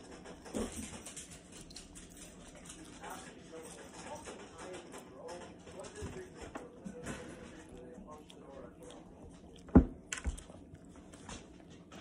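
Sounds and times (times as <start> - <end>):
dog licking and chewing wet food: 0.0 - 12.0.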